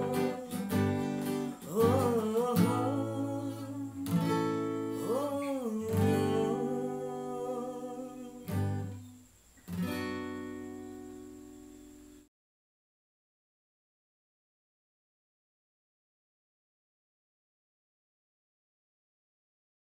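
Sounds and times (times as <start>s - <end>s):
man singing: 0.0s - 8.9s
acoustic guitar strumming: 0.0s - 12.2s.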